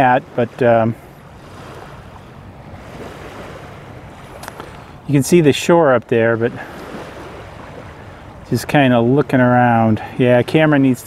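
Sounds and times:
waves washing on sand: 0:00.0 - 0:11.0.

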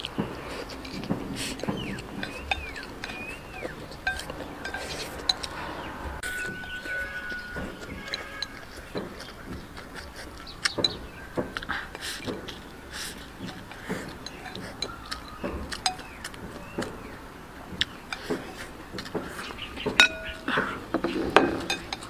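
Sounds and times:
chopsticks clicking on ceramic bowl: 0:00.0 - 0:05.6, 0:13.4 - 0:16.9
person chewing food: 0:00.0 - 0:22.0.

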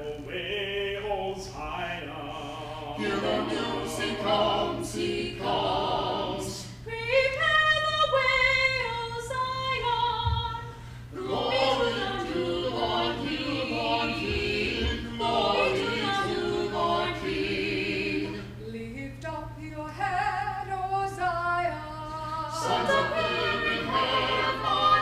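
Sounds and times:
small choir singing a hymn: 0:00.0 - 0:07.5, 0:11.1 - 0:18.7, 0:22.5 - 0:25.0.

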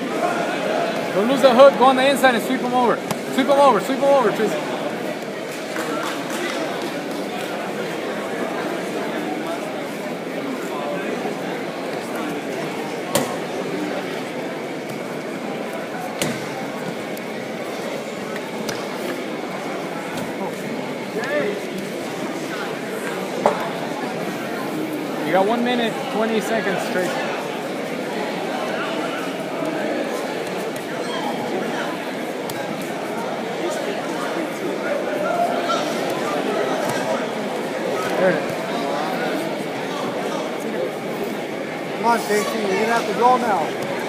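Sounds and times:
crowd chatter echoing in hall: 0:00.0 - 0:44.0.

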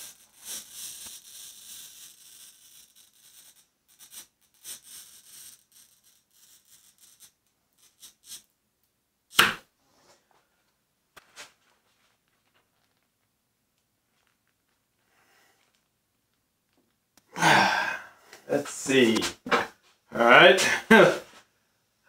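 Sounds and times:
glass cutter scoring glass: 0:09.3 - 0:09.6
sharp knock: 0:09.4 - 0:09.6.

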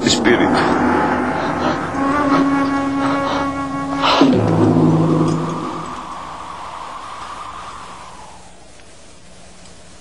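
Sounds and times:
rushing hiss of noise: 0:00.0 - 0:10.0.

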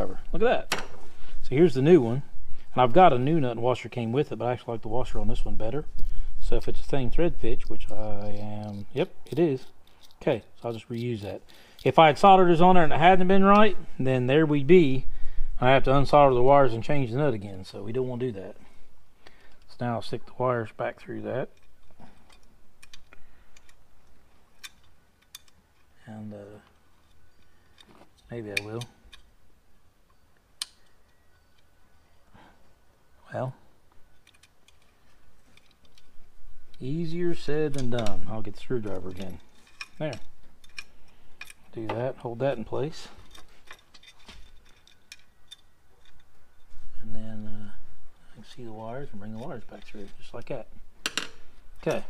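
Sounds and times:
wires and metal parts clicking: 0:05.8 - 0:13.8, 0:19.2 - 0:29.4, 0:30.0 - 0:32.3, 0:33.9 - 0:47.0, 0:47.6 - 0:52.0.

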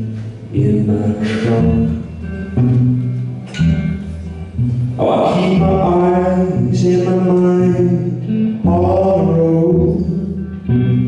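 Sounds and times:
strummed guitar chords: 0:00.0 - 0:11.0.

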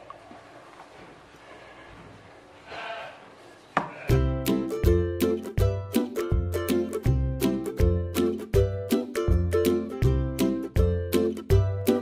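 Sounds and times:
faint voice-like call: 0:02.6 - 0:04.1.

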